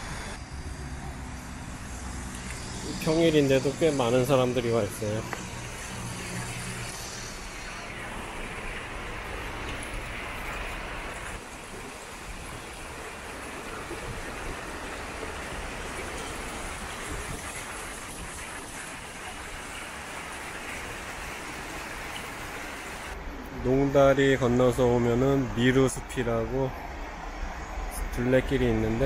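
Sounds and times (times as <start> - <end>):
water rippling over rocks: 3.0 - 23.2
river water rushing through stones: 7.8 - 23.2.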